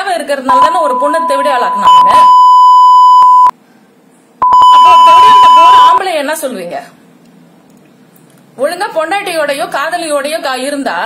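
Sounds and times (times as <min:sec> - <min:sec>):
high-pitched censor bleep: 0:00.5 - 0:03.5, 0:04.4 - 0:06.0
speech: 0:08.6 - 0:11.0.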